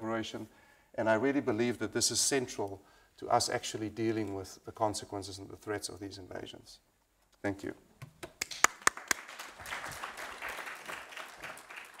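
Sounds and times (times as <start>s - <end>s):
audience applauding: 8.4s - 12.0s.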